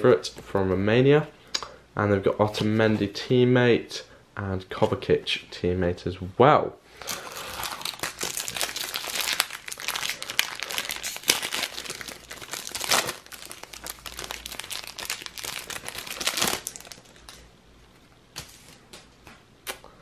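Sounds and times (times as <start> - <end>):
foil pack crinkling and tearing: 7.0 - 17.5.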